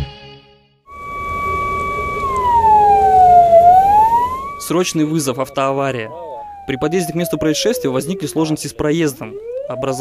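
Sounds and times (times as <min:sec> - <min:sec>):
ambulance siren: 0:00.9 - 0:10.0
van humming in traffic: 0:00.9 - 0:10.0.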